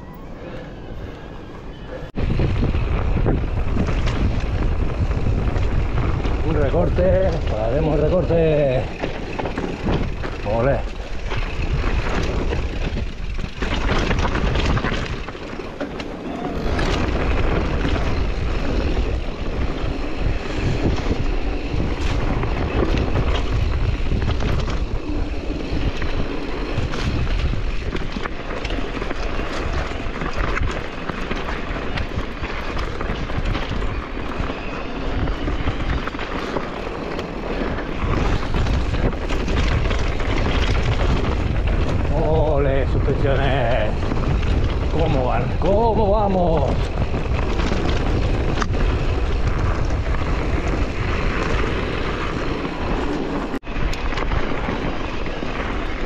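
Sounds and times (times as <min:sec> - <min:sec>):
wind rumbling on microphone: 0:00.0 - 0:56.0
tyres crunching over gravel: 0:02.3 - 0:56.0
bike clicks and knocks: 0:02.8 - 0:42.2, 0:46.5 - 0:56.0.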